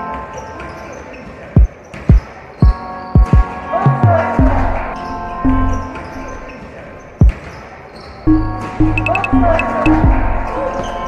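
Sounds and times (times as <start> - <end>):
background music of held tones: 0.0 - 11.0
deep basketball bounces: 7.2 - 7.6.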